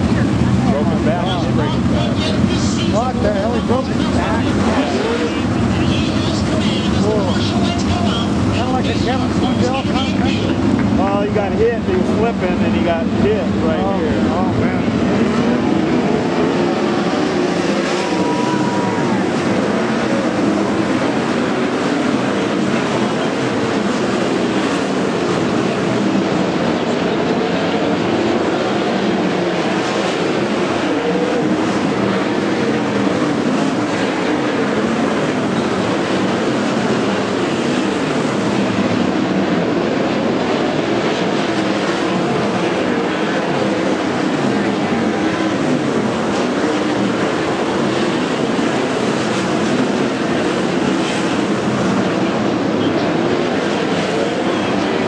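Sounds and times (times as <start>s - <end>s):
race car engines droning: 0.0s - 55.0s.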